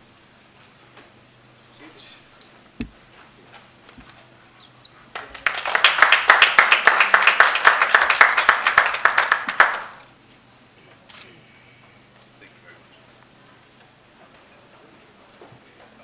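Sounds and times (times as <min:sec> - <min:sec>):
audience applauding: 0:05.1 - 0:10.1.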